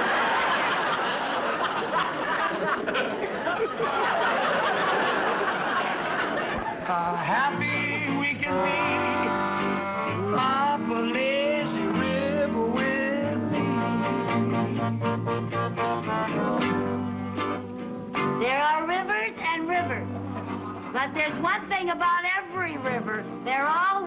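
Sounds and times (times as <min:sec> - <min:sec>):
accordion: 0:06.5 - 0:23.6
upright bass walking line: 0:06.5 - 0:24.0
electric guitars: 0:07.4 - 0:23.6.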